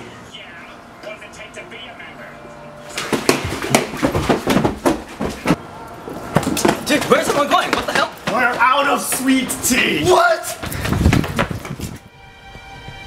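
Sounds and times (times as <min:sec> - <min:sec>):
knocks and thumps: 0:03.0 - 0:05.6.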